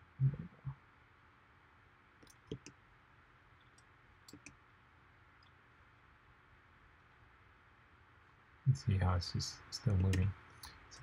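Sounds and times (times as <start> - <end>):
computer mouse clicks: 2.2 - 2.8, 3.6 - 4.6.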